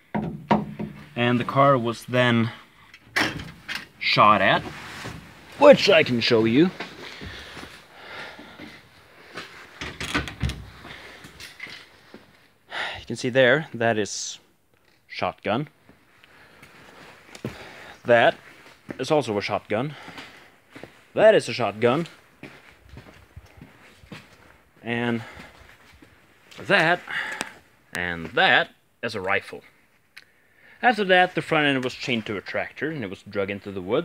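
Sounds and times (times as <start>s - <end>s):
dull thump: 0.1s - 1.2s
faint knocks and scuffs: 4.4s - 7.8s, 22.1s - 24.6s.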